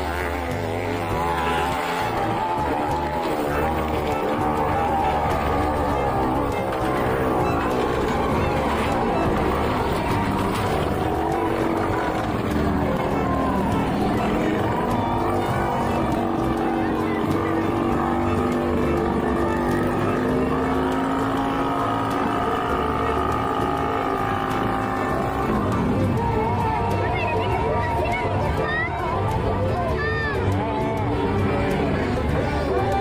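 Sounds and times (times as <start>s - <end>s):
small motorcycle engine: 0.0s - 33.0s.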